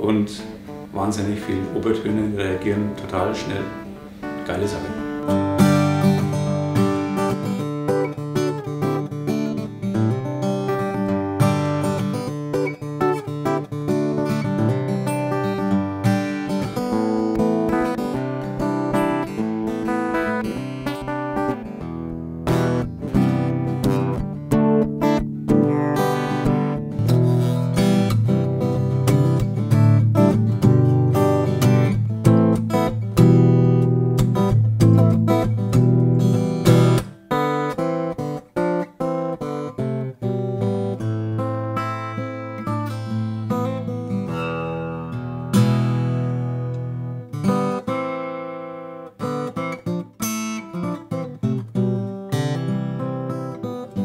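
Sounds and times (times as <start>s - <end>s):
acoustic guitar strummed and picked: 0.0s - 54.0s.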